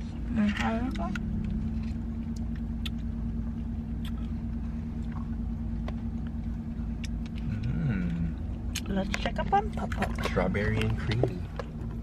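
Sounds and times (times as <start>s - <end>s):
car cabin engine hum: 0.0s - 12.0s.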